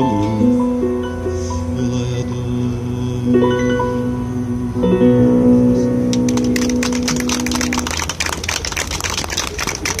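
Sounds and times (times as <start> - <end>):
audience clapping: 6.1 - 10.0.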